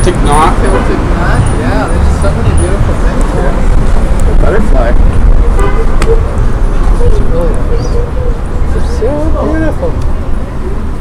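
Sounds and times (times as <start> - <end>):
heavy low rumble: 0.8 - 10.5.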